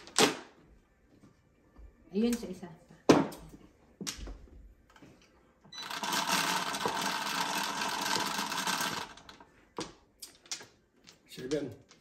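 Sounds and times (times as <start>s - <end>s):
mahjong table mechanism rattling: 5.8s - 9.4s.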